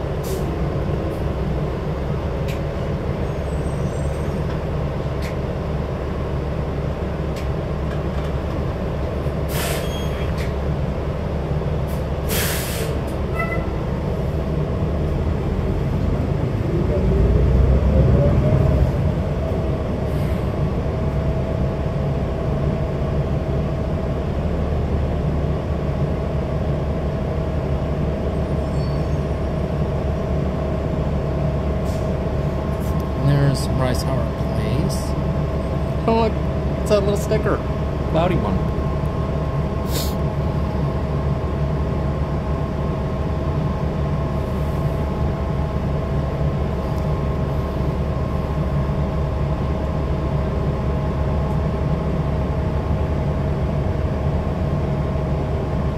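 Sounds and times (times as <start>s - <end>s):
bus drivetrain hum: 0.0s - 55.9s
air brake hisses: 9.5s - 10.2s, 12.3s - 13.0s, 39.8s - 40.2s.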